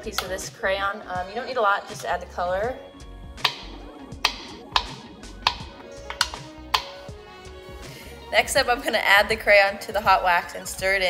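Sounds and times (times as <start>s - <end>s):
background music: 0.0s - 11.0s
knife tapping on cutting board: 3.4s - 7.0s.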